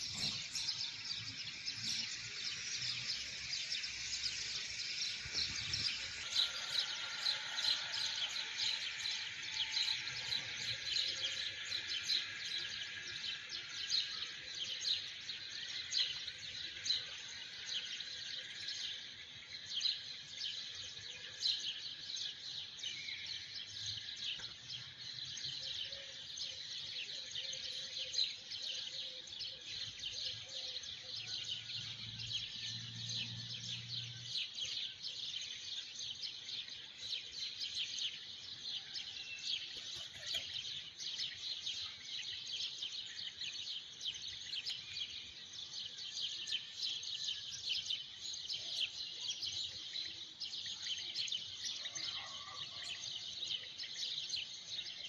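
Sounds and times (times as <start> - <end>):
birds chirping: 0.0 - 20.3, 22.9 - 52.2.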